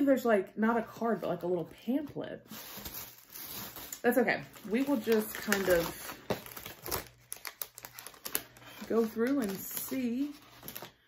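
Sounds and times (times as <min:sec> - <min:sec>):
plastic packaging crinkling: 0:02.5 - 0:11.0.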